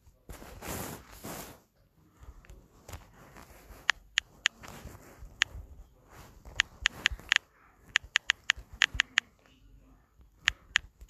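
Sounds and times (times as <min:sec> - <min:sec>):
phone keyboard clicks: 0:06.5 - 0:09.3, 0:10.4 - 0:11.0.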